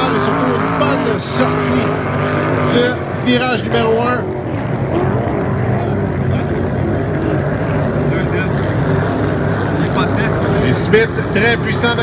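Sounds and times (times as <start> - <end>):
racing boat engines droning: 0.0 - 12.0.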